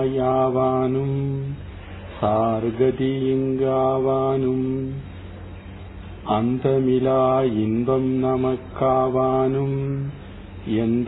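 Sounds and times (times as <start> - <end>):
man chanting a prayer: 0.0 - 5.1, 6.2 - 11.0.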